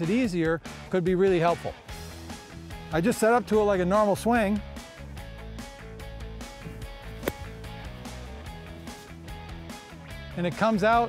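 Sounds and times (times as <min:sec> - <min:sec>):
golf club hitting sand: 0:06.8 - 0:08.0.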